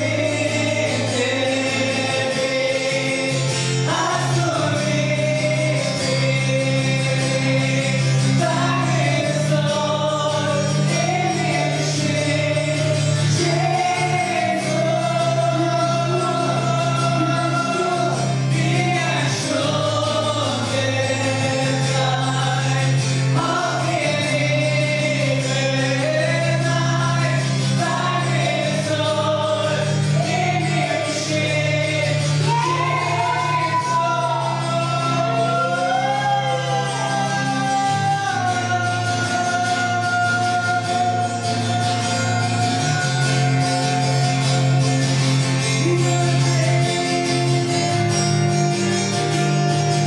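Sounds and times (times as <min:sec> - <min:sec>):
congregation singing along: 0:00.0 - 0:48.5
acoustic guitar: 0:00.0 - 0:50.0
man singing into a microphone: 0:00.0 - 0:50.0.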